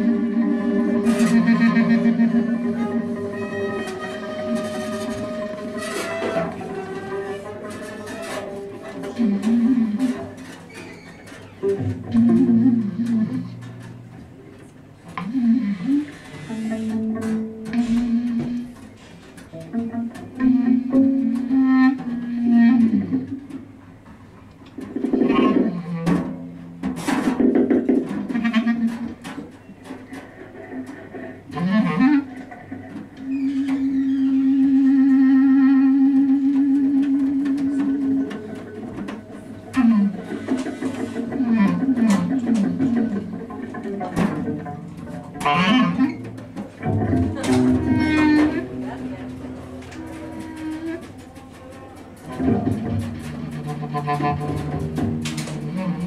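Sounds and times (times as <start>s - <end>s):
double bass: 0.0s - 56.0s
clarinet phrases: 33.2s - 39.0s.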